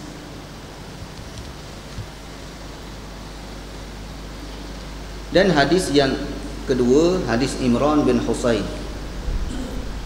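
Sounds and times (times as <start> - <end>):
steady hiss: 0.0 - 10.0
low hum: 8.8 - 10.0.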